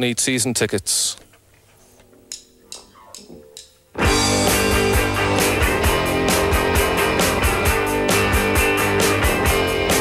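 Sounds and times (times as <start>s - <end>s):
rock band playing live: 4.0s - 10.0s.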